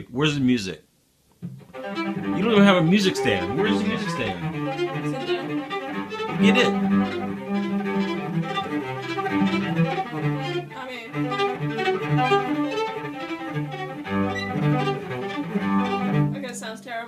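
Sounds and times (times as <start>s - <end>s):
bowed cello notes: 1.4s - 17.0s.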